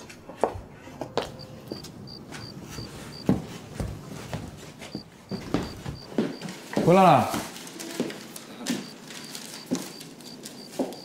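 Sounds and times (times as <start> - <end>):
footsteps indoors: 0.0 - 11.0.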